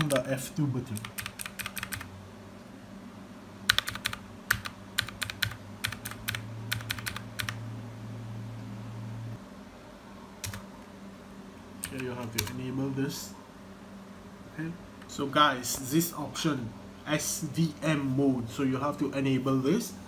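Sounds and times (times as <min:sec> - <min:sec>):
keyboard keys clicking: 0:00.0 - 0:00.3, 0:01.0 - 0:02.1, 0:03.7 - 0:07.6, 0:10.4 - 0:10.6, 0:11.8 - 0:12.6
low steady hum: 0:00.0 - 0:20.0.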